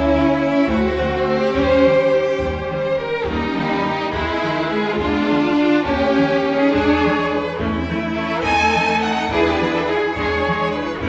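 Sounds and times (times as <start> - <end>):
cellos bowing: 0.0 - 11.0
double basses bowing: 0.0 - 11.0
violins bowing held notes: 0.0 - 11.0.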